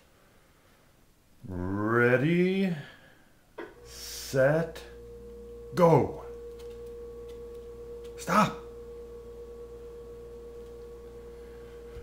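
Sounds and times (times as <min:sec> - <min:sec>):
steady hum: 0:03.6 - 0:12.0.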